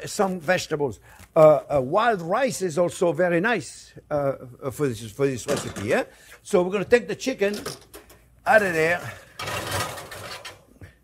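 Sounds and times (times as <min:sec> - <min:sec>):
metal pan scraping on oven rack: 0:09.1 - 0:10.6.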